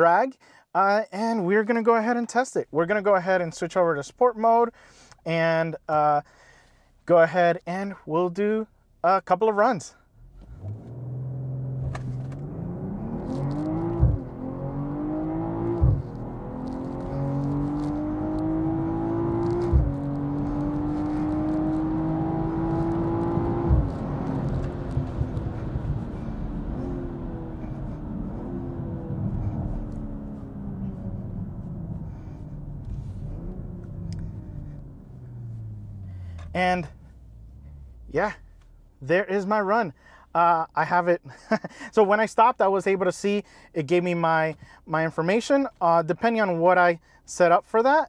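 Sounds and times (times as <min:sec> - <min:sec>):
car engine accelerating: 0:10.2 - 0:39.0.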